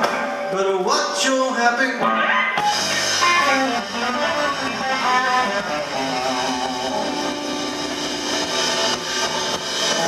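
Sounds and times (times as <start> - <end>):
blues band on electric guitars: 0.0 - 10.0.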